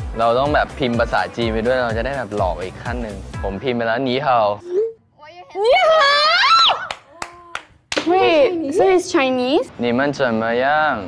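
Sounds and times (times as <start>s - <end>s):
woman's excited voice: 5.3s - 9.6s
hand claps: 6.8s - 8.2s.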